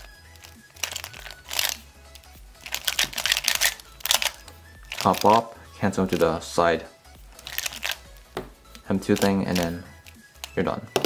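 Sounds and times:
plastic puzzle clacking and scraping: 0.0 - 5.5, 7.4 - 8.1, 9.0 - 11.0
background music with low bass: 0.0 - 11.0.

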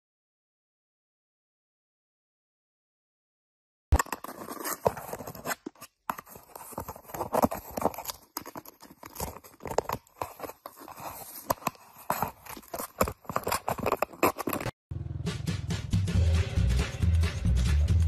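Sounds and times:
paper crinkling and tearing: 4.0 - 14.8.

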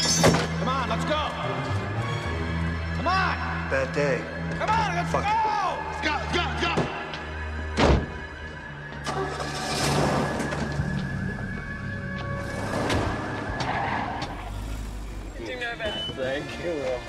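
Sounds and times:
film music score: 0.0 - 17.0
car noise: 6.6 - 17.0.

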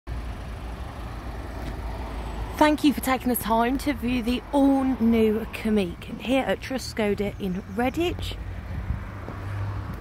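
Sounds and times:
outdoor background noise: 0.1 - 10.0.

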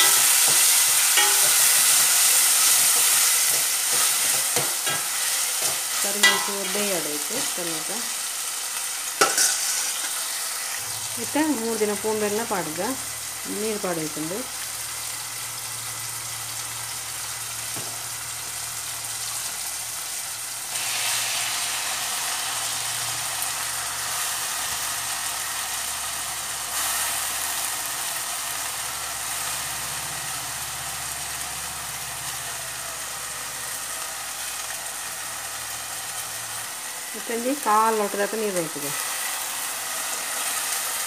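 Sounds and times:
food sizzling in hot oil: 0.0 - 41.0.

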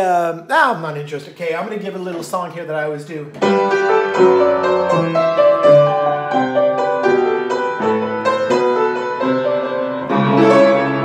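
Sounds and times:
upright piano melody: 2.1 - 11.0.

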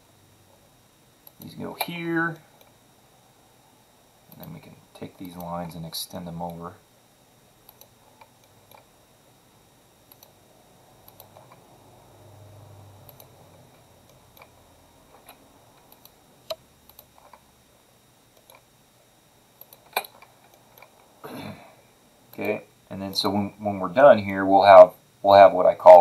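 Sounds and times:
computer mouse clicks: 1.2 - 2.7, 4.3 - 4.6, 7.6 - 8.9, 10.1 - 10.4, 11.0 - 11.6, 13.0 - 13.4, 15.2 - 17.4, 18.3 - 18.7, 19.6 - 21.0.

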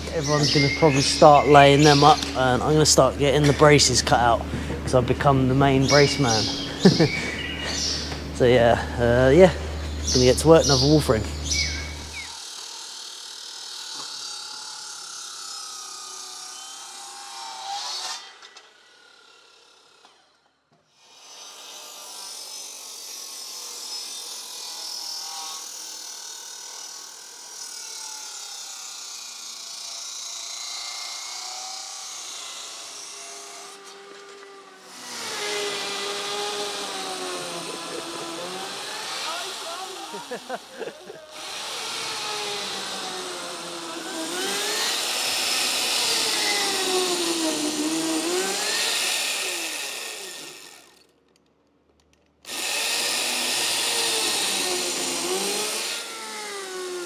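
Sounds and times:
power saw cutting timber: 0.0 - 51.2, 52.4 - 57.0.

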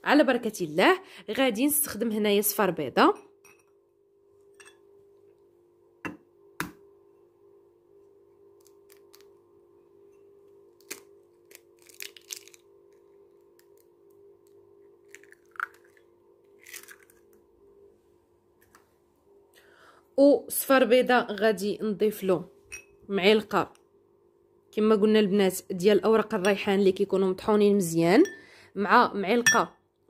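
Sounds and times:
faint steady hum: 0.0 - 30.0
eggshell crackling: 10.8 - 17.4.

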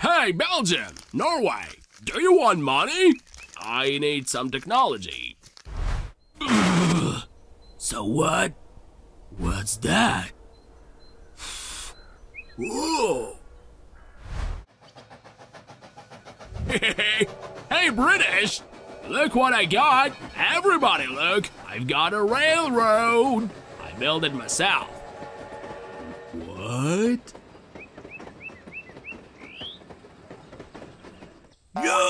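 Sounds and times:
bird chirping: 2.6 - 4.2, 7.1 - 14.4, 27.4 - 31.7
steam locomotive chugging: 14.7 - 32.0
rising whoosh with low rumble: 16.5 - 19.8.

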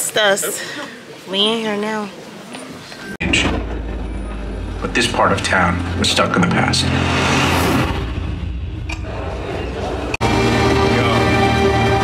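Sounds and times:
low steady rumble: 3.2 - 10.2.

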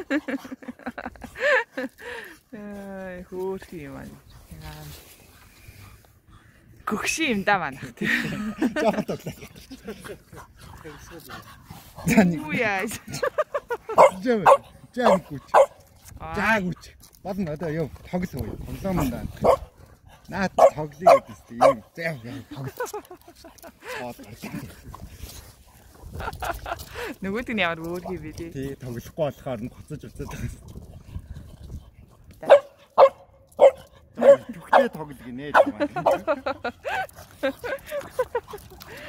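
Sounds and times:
people talking: 6.9 - 9.4, 12.1 - 13.0, 16.2 - 16.7, 27.0 - 28.6, 34.2 - 36.5
dogs snorting: 9.4 - 16.6, 18.7 - 39.0.

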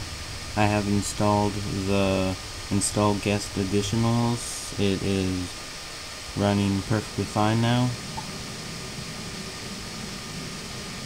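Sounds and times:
background hiss: 0.0 - 11.0.

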